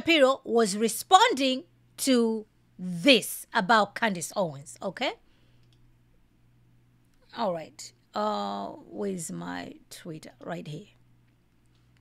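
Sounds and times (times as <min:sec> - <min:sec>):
faint clicks: 0:05.6 - 0:05.9.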